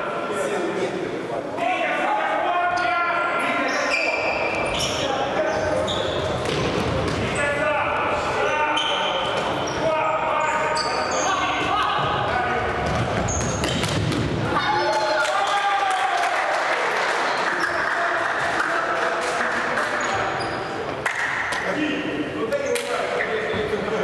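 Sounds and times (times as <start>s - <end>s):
sneakers squeaking on court floor: 3.4s - 7.6s, 8.4s - 15.0s, 19.9s - 20.8s
ball kicks and bounces: 12.8s - 14.4s
players shouting: 14.4s - 18.7s.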